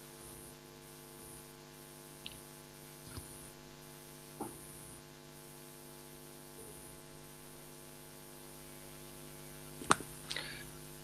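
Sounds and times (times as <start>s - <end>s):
electrical hum with hiss: 0.0s - 11.0s.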